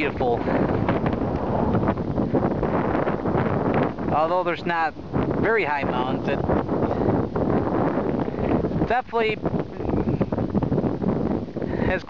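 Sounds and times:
wind blowing on microphone: 0.0s - 12.0s.

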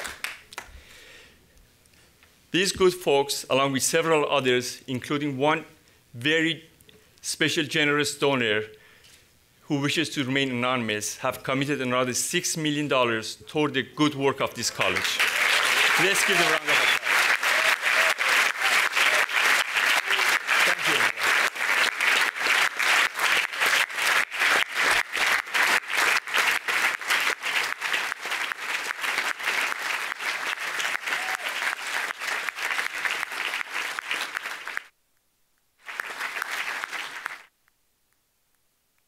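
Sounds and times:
audience applause: 0.0s - 0.7s, 14.7s - 34.9s, 35.8s - 37.5s.

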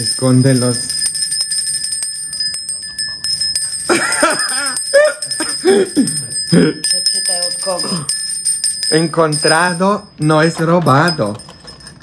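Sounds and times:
small bell ringing: 0.0s - 12.0s.

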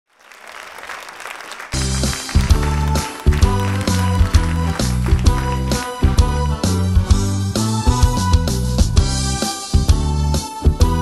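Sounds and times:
audience applauding: 0.1s - 6.9s
music with strong bass: 1.8s - 11.0s.

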